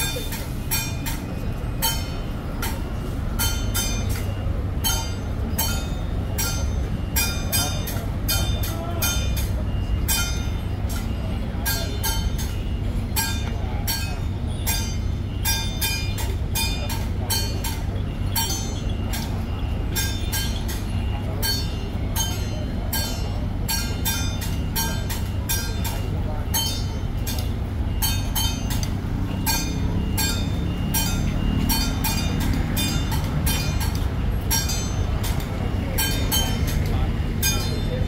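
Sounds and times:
continuous low rumble: 0.0 - 38.0
ringing metal percussion strikes: 0.0 - 38.0.

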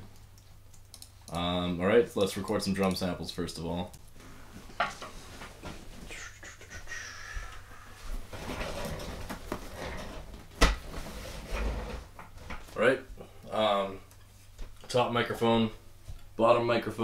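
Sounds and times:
office chair creaking and squeaking: 8.1 - 12.6.

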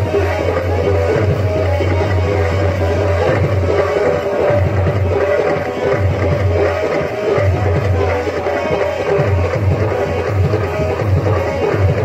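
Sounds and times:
loud music with drums: 0.0 - 12.0.

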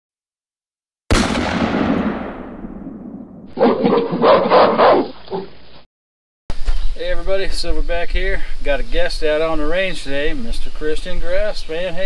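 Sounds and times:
loud blast: 1.1 - 3.6.

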